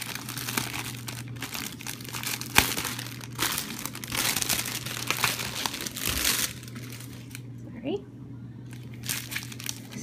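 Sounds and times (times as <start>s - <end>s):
plastic packaging crinkling: 0.0s - 7.5s, 8.7s - 10.0s
faint low hum: 0.0s - 10.0s.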